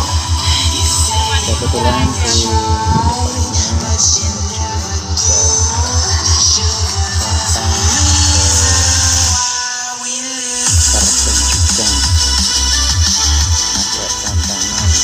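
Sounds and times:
heavy pulsing bass: 0.0s - 9.5s, 10.6s - 15.0s
loud electronic dance music: 0.0s - 15.0s.

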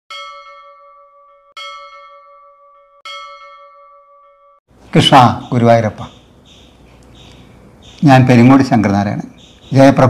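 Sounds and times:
bell ringing: 0.1s - 4.6s.

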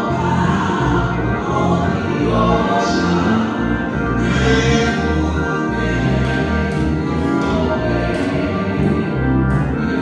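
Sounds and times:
sustained instrumental accompaniment: 0.0s - 10.0s.

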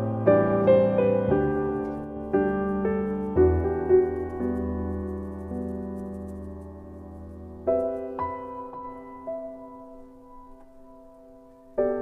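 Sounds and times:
soft solo piano: 0.0s - 12.0s.

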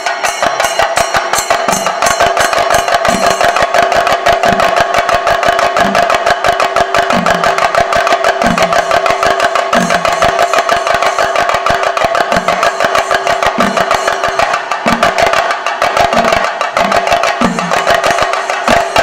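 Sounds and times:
drum ensemble beaten with sticks: 0.0s - 19.0s.

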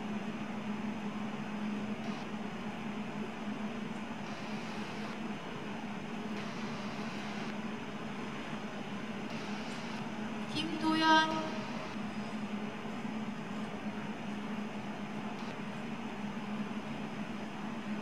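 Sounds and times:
air-handling machinery hum: 0.0s - 18.0s.

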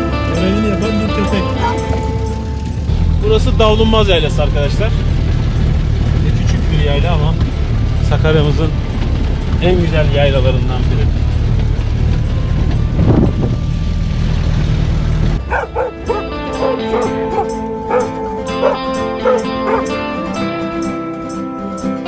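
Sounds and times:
jeep engine and wind rumble: 0.0s - 22.0s
plucked-string music: 0.0s - 22.0s.

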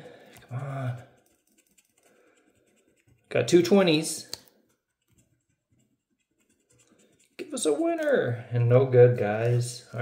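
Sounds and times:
coin scratching lottery ticket: 0.5s - 4.0s, 4.7s - 8.1s.

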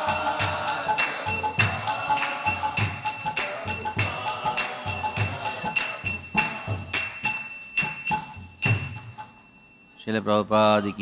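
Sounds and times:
low drum beats: 0.0s - 7.2s, 8.0s - 9.2s
hand cymbals ringing: 0.0s - 10.1s.

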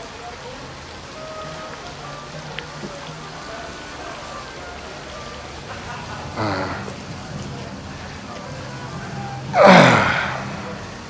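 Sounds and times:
breathy vocal sigh: 6.3s - 7.0s, 9.5s - 10.8s.

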